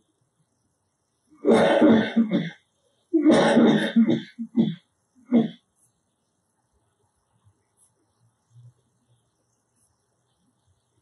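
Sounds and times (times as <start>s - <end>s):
person clearing throat and coughing: 1.4s - 2.6s, 3.2s - 5.6s.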